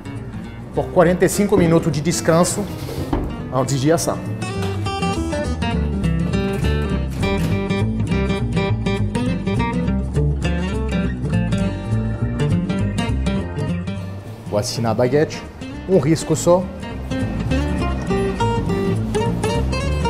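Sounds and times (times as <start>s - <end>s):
steady bass: 0.0s - 14.0s, 16.1s - 20.0s
plucked acoustic guitar: 0.0s - 14.4s, 16.7s - 20.0s.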